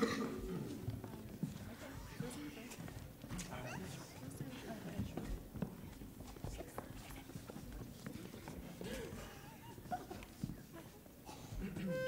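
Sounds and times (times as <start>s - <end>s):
people murmuring: 0.0s - 12.0s
feet shuffling on stage floor: 0.3s - 12.0s.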